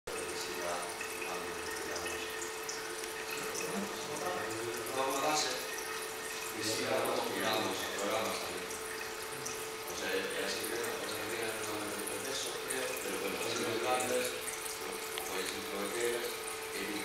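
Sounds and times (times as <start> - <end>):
tap water running into sink: 0.1 - 17.0.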